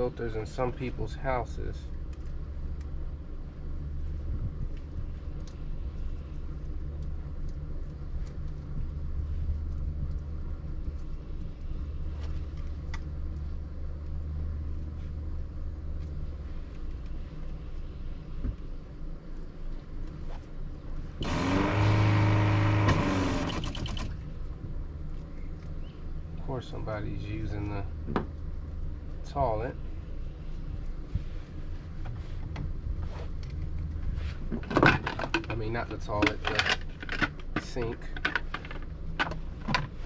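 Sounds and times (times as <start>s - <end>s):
low rumble: 0.0s - 21.3s, 24.1s - 40.0s.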